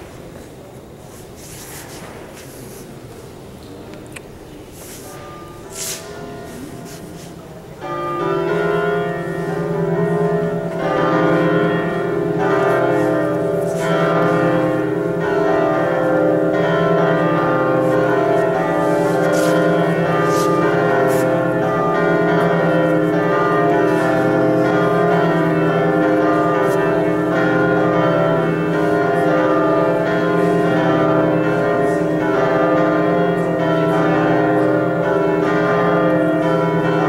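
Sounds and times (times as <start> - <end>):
church music sustained chords: 4.9 - 37.0.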